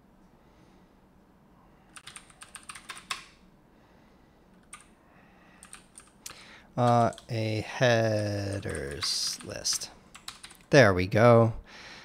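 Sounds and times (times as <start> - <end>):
computer keyboard typing: 1.9 - 3.3, 4.6 - 4.9, 5.6 - 10.7.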